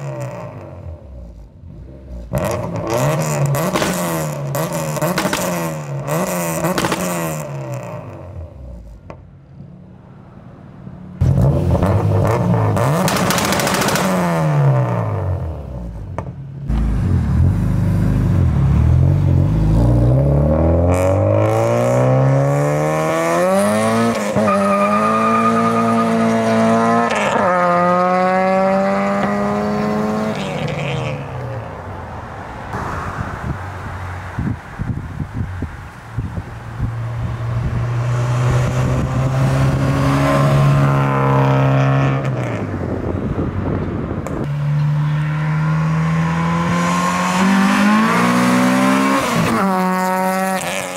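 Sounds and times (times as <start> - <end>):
car engine revving: 0.0 - 9.0, 11.2 - 31.9, 36.7 - 50.9.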